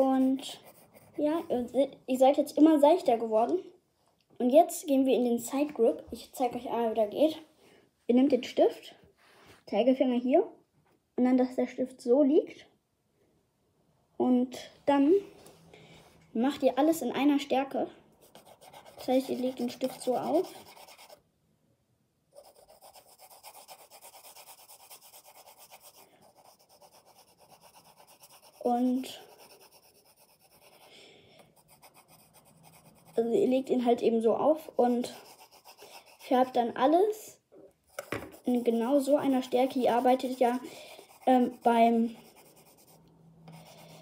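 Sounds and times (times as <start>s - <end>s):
pencil shading on paper: 0.0s - 1.7s, 18.2s - 21.2s, 22.4s - 34.0s, 34.6s - 36.7s, 37.9s - 44.0s.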